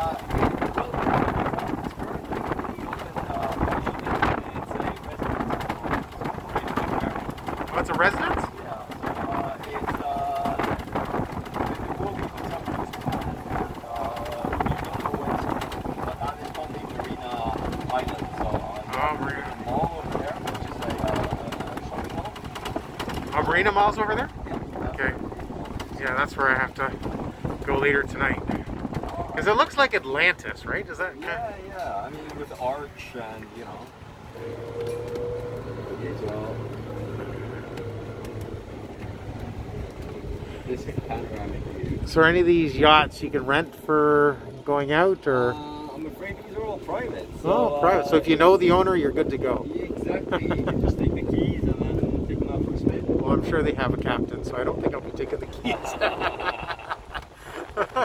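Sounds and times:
cart body rattling: 0:00.0 - 0:58.0
tyres rumbling on paving stones: 0:00.0 - 0:58.0
wind on microphone: 0:00.0 - 0:58.0.

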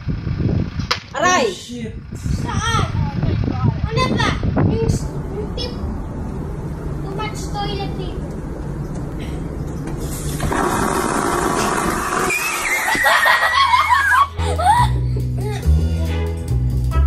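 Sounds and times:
toilet flushing: 0:10.1 - 0:13.5.

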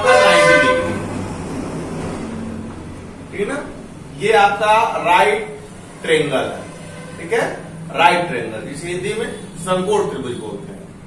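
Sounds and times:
vehicle horn blaring: 0:00.0 - 0:01.1, 0:06.4 - 0:07.6.

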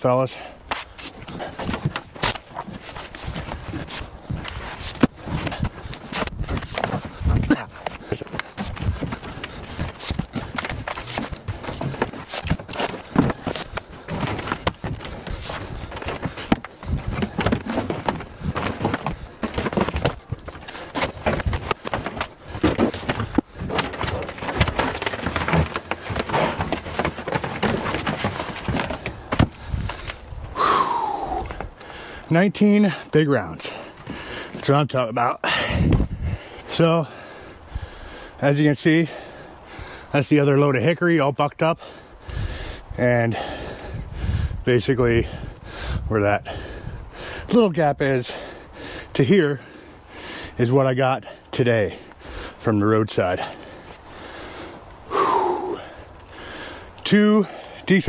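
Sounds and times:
logs scraping on truck bed: 0:00.7 - 0:30.3
logs thudding on ground: 0:00.7 - 0:31.8.

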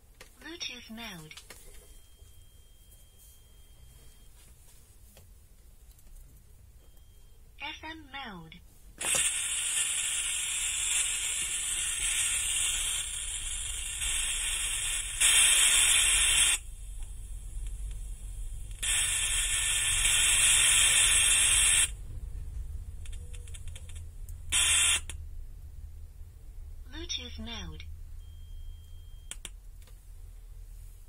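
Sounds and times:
static hiss from loudspeaker: 0:00.2 - 0:01.6, 0:07.6 - 0:22.1, 0:22.8 - 0:25.2, 0:26.8 - 0:27.9.

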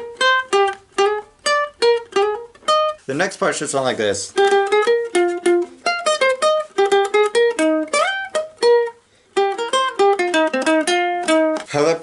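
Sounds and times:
ukulele picked fingerstyle: 0:00.0 - 0:12.0.

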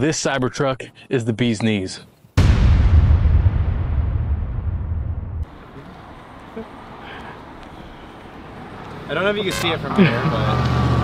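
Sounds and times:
deep rumbling boom: 0:02.4 - 0:05.6
quiet street ambience: 0:05.4 - 0:11.0.

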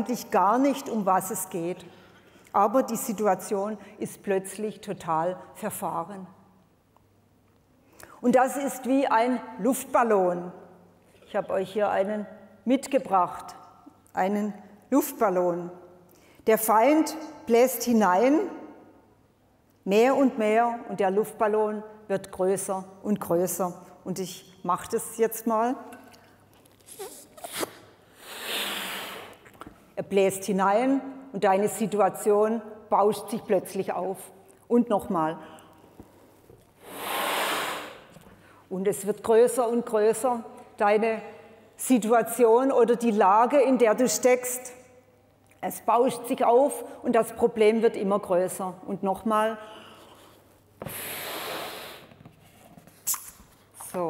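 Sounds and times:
breath blown into balloon: 0:26.9 - 0:29.6, 0:36.8 - 0:38.2, 0:50.8 - 0:52.2.

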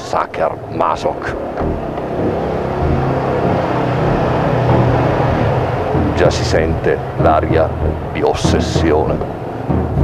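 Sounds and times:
scooter engine running: 0:01.6 - 0:08.6.

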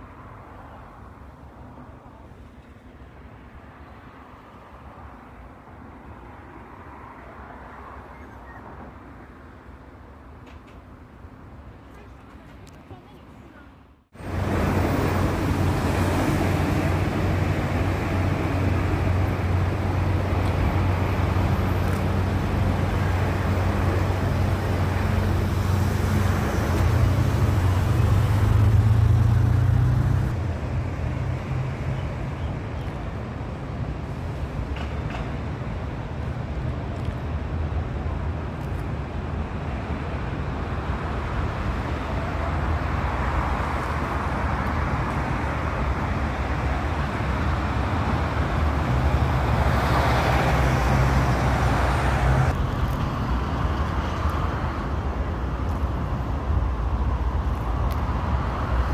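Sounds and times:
passing cars: 0:00.0 - 0:58.9
heavy vehicle engine hum: 0:14.0 - 0:58.9.

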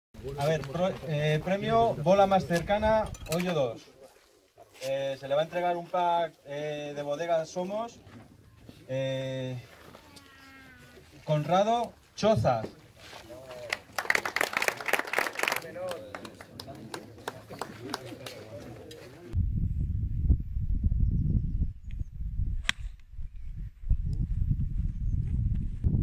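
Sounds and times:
wind buffeting microphone: 0:19.4 - 0:26.0.

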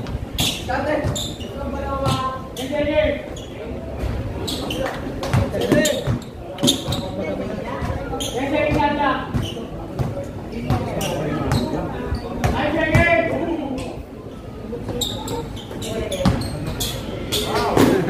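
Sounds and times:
basketball bouncing on concrete: 0:05.2 - 0:07.0, 0:12.4 - 0:13.1, 0:16.2 - 0:16.4.

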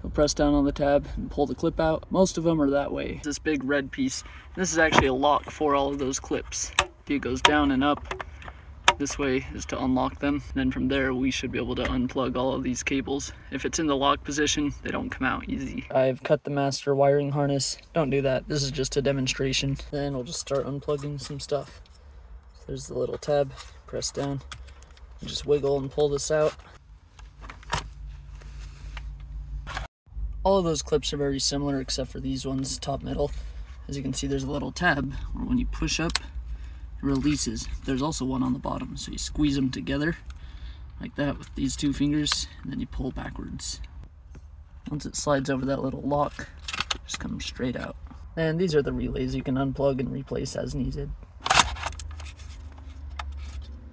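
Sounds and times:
low steady rumble: 0:00.0 - 0:53.9
handling scrape or clatter: 0:23.3 - 0:29.9, 0:51.4 - 0:53.9.

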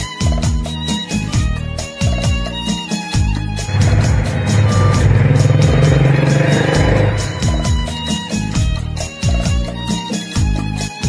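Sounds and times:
buzzing low synth line: 0:03.7 - 0:08.1
fast percussion ticks: 0:03.7 - 0:08.2.

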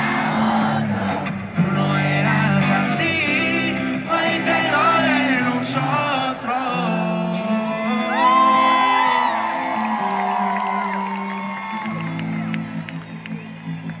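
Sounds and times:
crowd whooping: 0:00.0 - 0:05.6, 0:07.3 - 0:14.0.

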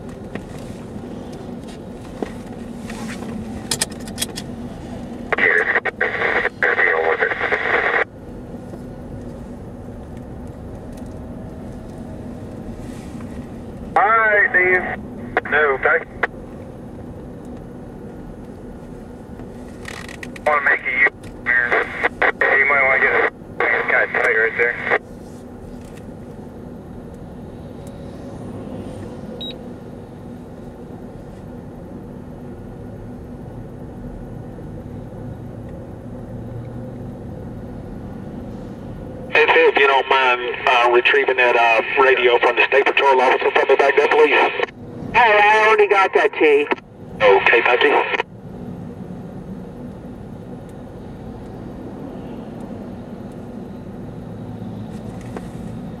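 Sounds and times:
engine and tyre noise: 0:00.0 - 0:56.0
road noise: 0:00.0 - 0:56.0.

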